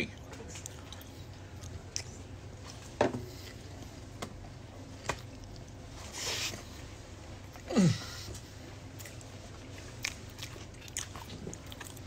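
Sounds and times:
person chewing: 0:00.1 - 0:03.8, 0:07.4 - 0:12.0.

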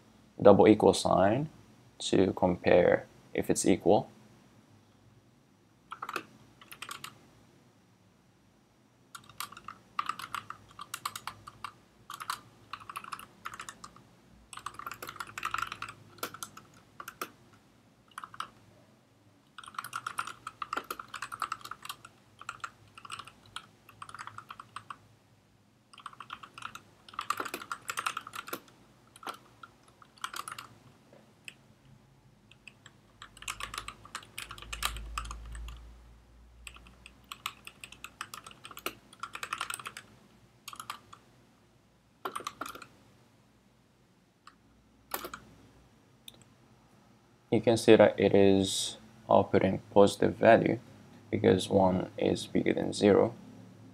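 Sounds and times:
keyboard typing: 0:05.9 - 0:07.2, 0:09.1 - 0:18.6, 0:19.5 - 0:25.0, 0:25.9 - 0:30.8, 0:32.5 - 0:35.8, 0:36.6 - 0:40.1, 0:40.7 - 0:41.2, 0:42.2 - 0:43.0, 0:44.5 - 0:45.5.

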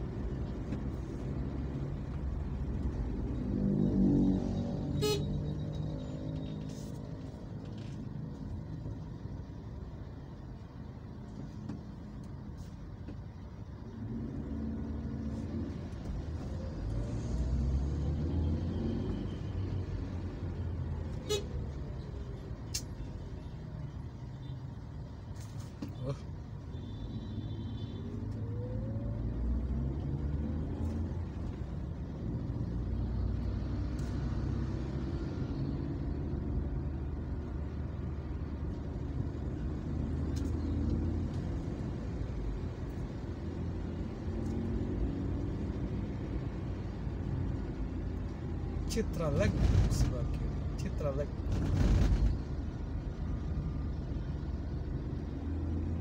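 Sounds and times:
cargo truck: 0:00.0 - 0:56.0
heavy road traffic rumble: 0:00.0 - 0:56.0.

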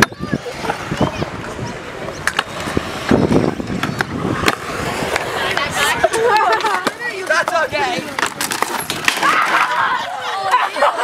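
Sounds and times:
skateboard deck clacking: 0:00.0 - 0:10.6
skateboard wheels rolling on concrete: 0:00.0 - 0:11.0.

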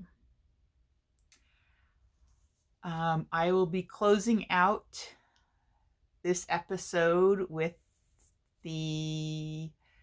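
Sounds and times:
woman speaking: 0:02.8 - 0:05.2, 0:06.2 - 0:07.8, 0:08.6 - 0:09.8.

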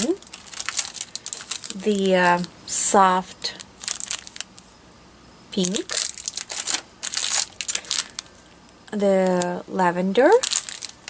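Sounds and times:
plastic packets crinkling: 0:00.0 - 0:04.7, 0:05.6 - 0:09.6, 0:10.2 - 0:11.0.

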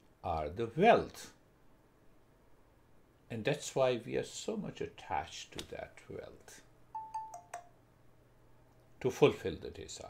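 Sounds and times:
faint steady hum: 0:00.0 - 0:10.0
two-note chime: 0:07.0 - 0:07.7.

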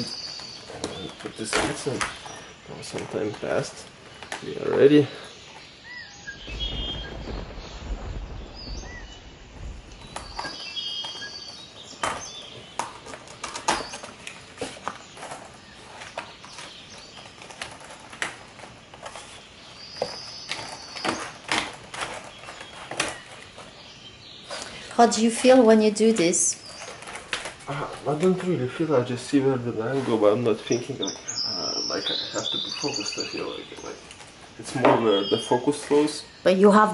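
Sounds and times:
clicks and rustles of handling: 0:00.0 - 0:04.9, 0:09.9 - 0:28.6, 0:33.8 - 0:34.9
faint bird chirps: 0:00.0 - 0:18.1, 0:19.0 - 0:36.9.

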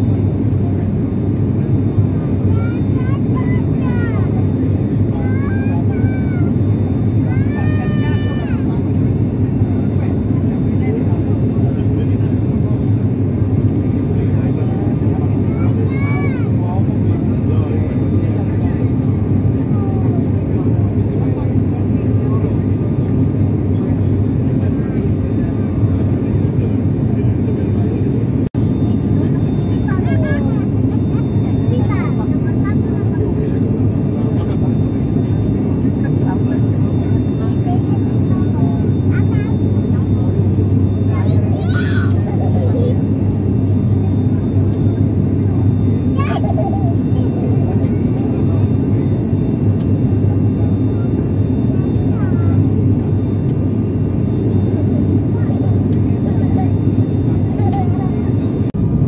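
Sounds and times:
faint voices: 0:00.0 - 0:59.0
turboprop airliner cabin drone: 0:00.0 - 0:59.0.

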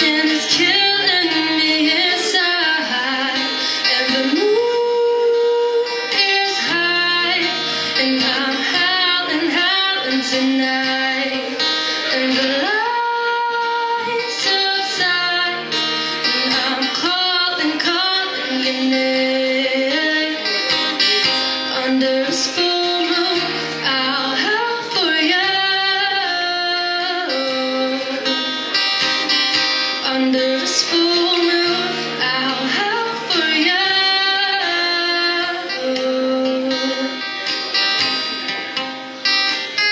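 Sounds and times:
woman singing: 0:00.0 - 0:37.5
acoustic guitar: 0:00.0 - 0:39.9.

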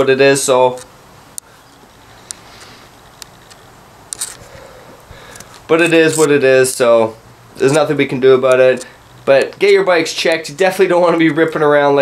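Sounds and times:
faint room noise: 0:00.0 - 0:12.0
short rustle: 0:01.5 - 0:07.0
camera handling clicks: 0:03.2 - 0:04.5.

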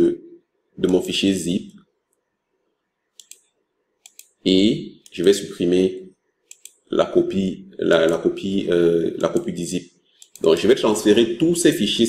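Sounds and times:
computer mouse clicks: 0:03.2 - 0:04.4, 0:06.5 - 0:06.8, 0:10.2 - 0:10.6.

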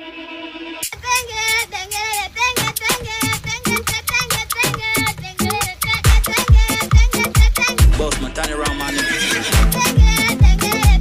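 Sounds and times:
song with high sung vocal: 0:00.0 - 0:11.0.

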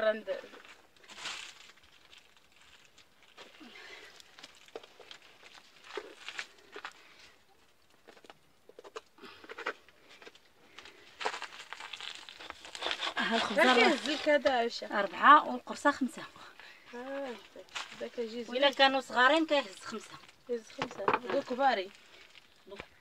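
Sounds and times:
person speaking: 0:13.2 - 0:16.1.

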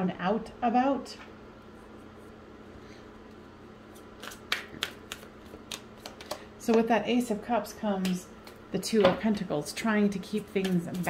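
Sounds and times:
room noise: 0:00.0 - 0:11.0.

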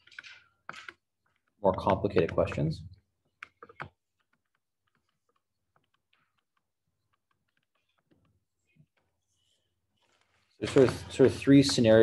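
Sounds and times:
stylus tapping on tablet screen: 0:00.1 - 0:09.3.

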